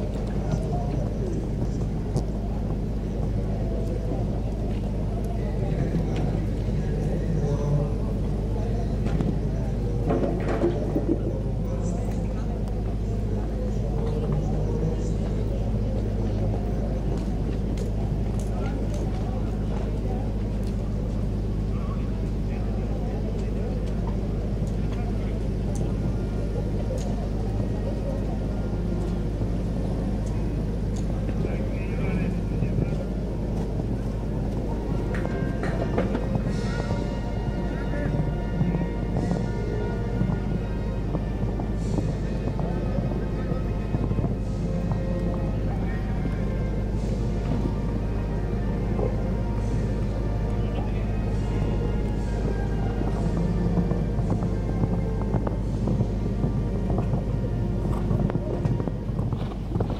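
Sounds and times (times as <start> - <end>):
indistinct voices: 0.0 - 59.9
steady low rumble: 0.0 - 59.9.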